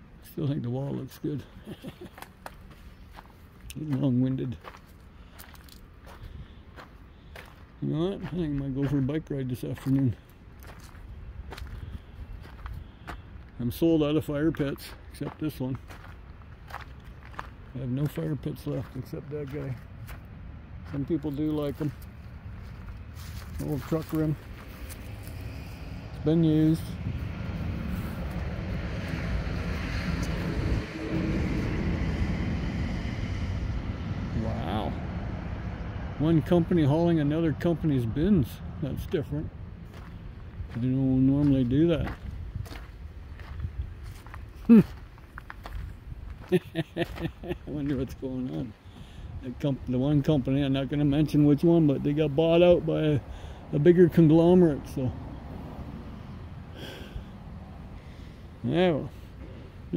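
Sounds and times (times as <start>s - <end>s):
faint footsteps on gravel: 1.8s - 26.2s, 39.0s - 48.7s
truck driving past: 14.8s - 49.3s, 50.4s - 59.9s.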